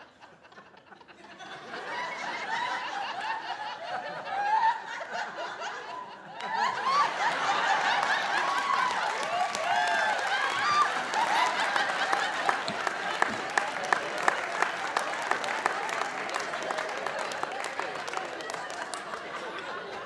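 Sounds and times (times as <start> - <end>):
audience laughing: 0.0 - 20.0
scattered applause: 6.3 - 20.0.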